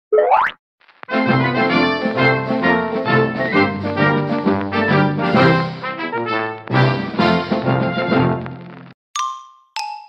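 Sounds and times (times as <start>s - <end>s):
cartoon upward pitch sweep: 0.1s - 0.6s.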